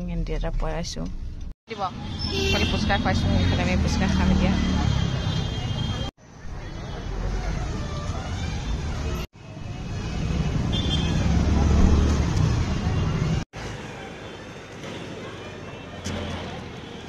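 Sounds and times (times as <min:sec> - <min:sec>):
traffic rumble: 0:00.0 - 0:17.0.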